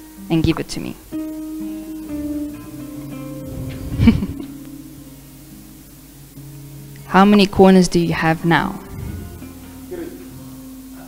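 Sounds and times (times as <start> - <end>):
acoustic guitar soft chords: 0.0 - 11.0.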